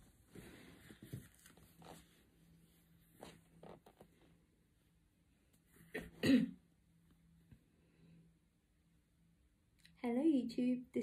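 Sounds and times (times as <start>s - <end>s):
woman clearing her throat: 5.9s - 6.6s.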